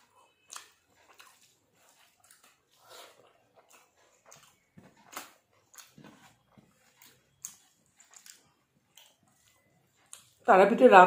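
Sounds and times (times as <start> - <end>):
chewing and lip-smacking: 0.0 - 10.5.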